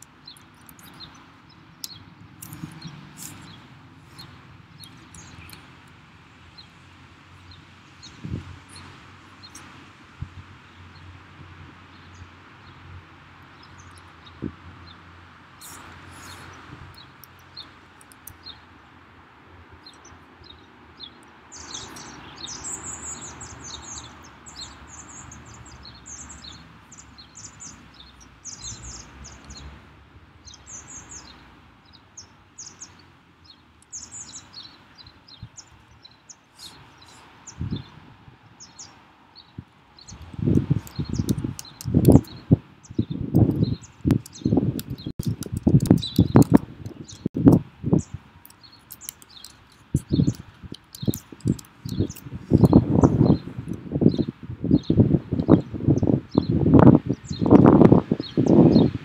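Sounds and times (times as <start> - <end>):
high bird chirps: 15.6 - 18.7, 19.8 - 29.7, 38.6 - 59.0
keyboard typing: 43.4 - 47.6, 48.4 - 52.7.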